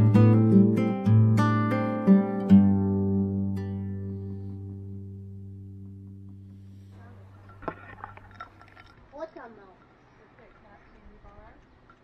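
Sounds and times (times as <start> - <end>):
acoustic guitar music: 0.0 - 9.7.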